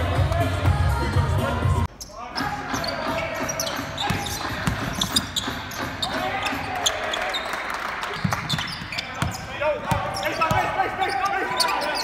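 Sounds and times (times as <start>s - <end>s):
players and crowd calling out: 0.1s - 12.0s
sneakers squeaking: 1.9s - 12.0s.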